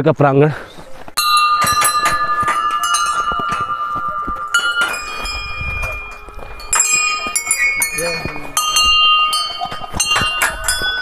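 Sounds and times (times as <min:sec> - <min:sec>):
brass bells struck by hand: 0:01.2 - 0:11.0.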